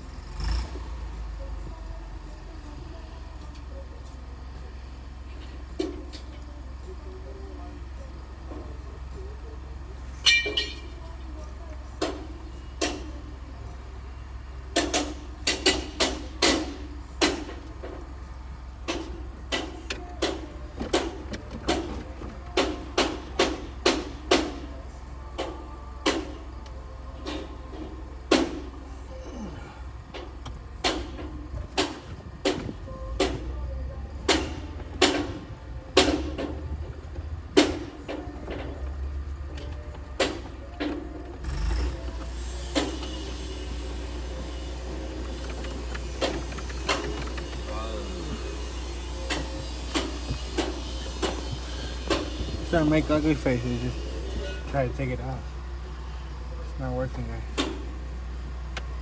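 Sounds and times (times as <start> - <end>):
low steady hum: 0.0 - 59.0.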